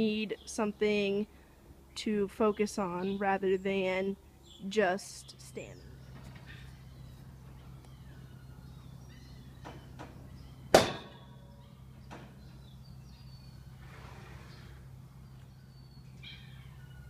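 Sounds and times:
steady low hum: 0.0s - 17.0s
horse banging against metal bars: 9.6s - 11.4s.

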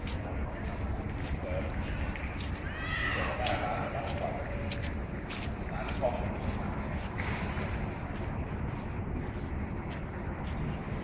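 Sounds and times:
constant low rumble: 0.0s - 11.0s
crowd murmuring: 0.0s - 11.0s.

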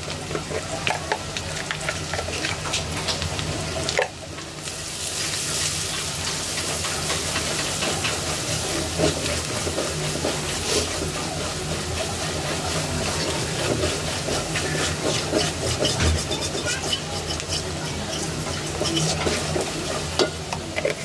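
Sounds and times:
onions sizzling in hot oil: 0.0s - 21.0s
spatula scraping a pot: 6.6s - 21.0s.

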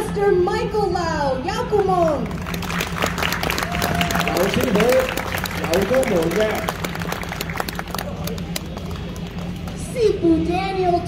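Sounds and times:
low hum: 0.0s - 11.0s
crowd murmur: 1.8s - 11.0s
crowd applause: 2.0s - 9.8s.

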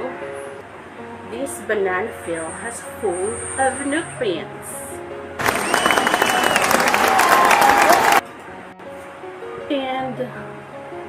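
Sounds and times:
crowd clapping: 5.4s - 8.2s
high whistle: 5.4s - 8.2s.

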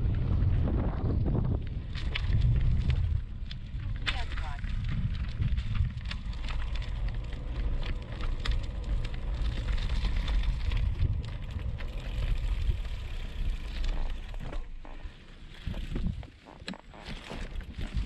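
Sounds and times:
bike tyres crackling over gravel: 0.0s - 18.0s
wind rumbling on microphone: 0.0s - 18.0s.

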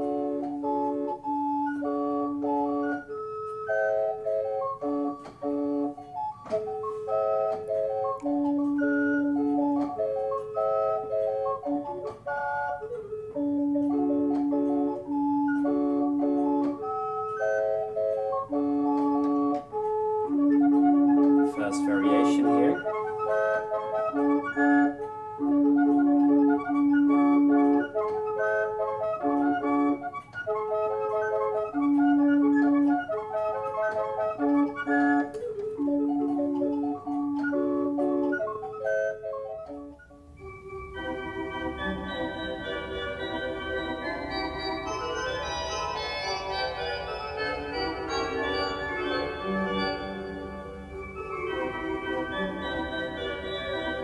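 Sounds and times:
mechanical flute clock melody: 0.0s - 54.0s.

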